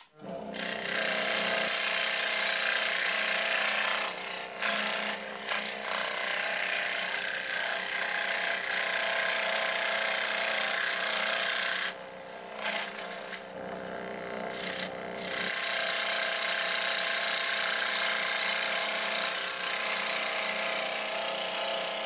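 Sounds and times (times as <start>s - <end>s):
scroll saw motor hum: 0.0s - 1.9s, 11.8s - 15.7s
saw blade rasping through wood: 0.0s - 22.0s.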